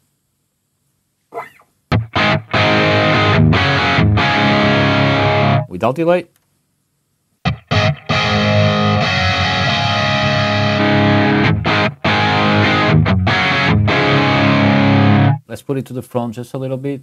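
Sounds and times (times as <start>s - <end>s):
distorted electric guitar chords: 1.9s - 5.7s, 7.4s - 15.4s.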